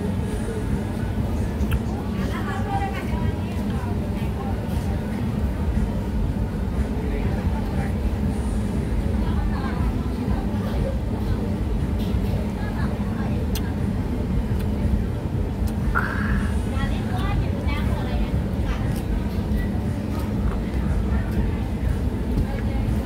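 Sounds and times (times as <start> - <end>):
indistinct voices talking: 0.0 - 23.0
steady low rumble: 0.0 - 23.0.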